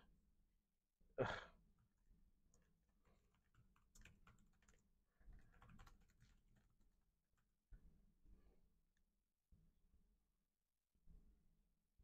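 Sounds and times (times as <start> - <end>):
man sighing: 1.2 - 1.5.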